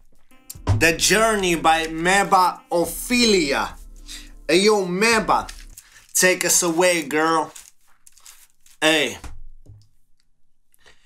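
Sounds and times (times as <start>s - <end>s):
soft low thump: 0.6s - 1.0s.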